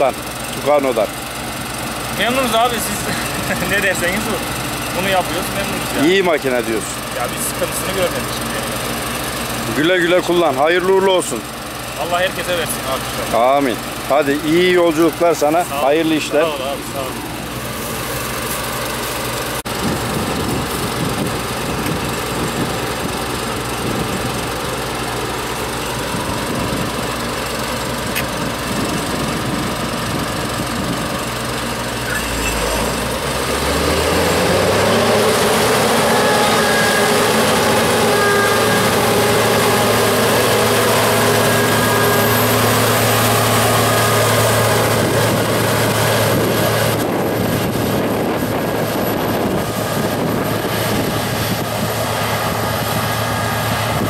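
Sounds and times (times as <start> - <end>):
combine harvester engine revving: 0.0 - 54.0.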